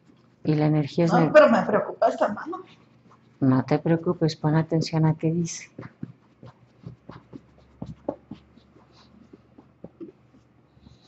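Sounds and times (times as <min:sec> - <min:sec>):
hand rustling against cloth: 0:05.6 - 0:10.6.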